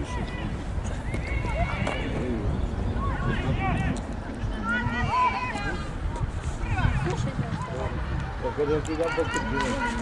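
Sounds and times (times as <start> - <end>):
wind rumbling on microphone: 0.0 - 10.0
women shouting: 4.6 - 5.9.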